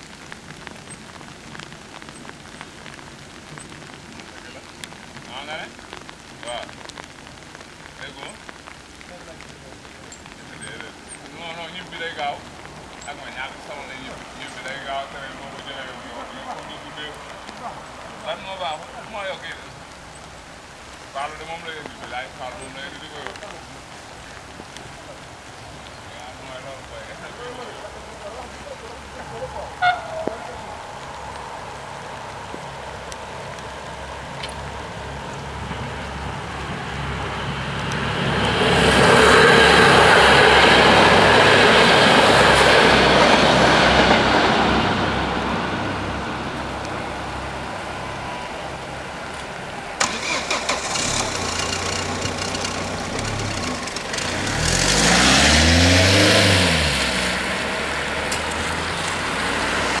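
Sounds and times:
train rumbling past: 0:38.1 - 0:45.9
car driving past: 0:50.0 - 1:00.0.

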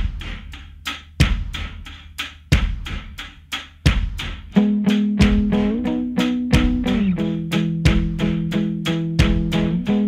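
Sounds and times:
bass drum booming: 0:03.9 - 0:08.6.

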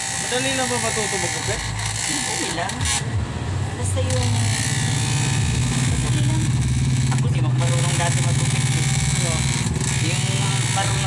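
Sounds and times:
electric hair clippers buzzing: 0:00.0 - 0:03.2, 0:04.0 - 0:11.0.

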